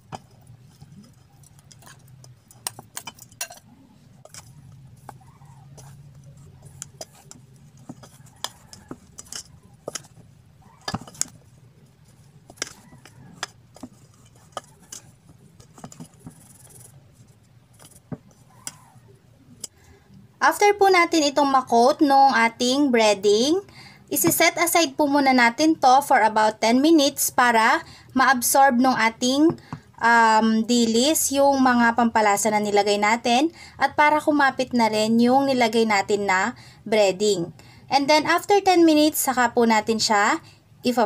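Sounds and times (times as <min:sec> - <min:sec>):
hands tossing fish in flour: 0:00.0 - 0:19.7.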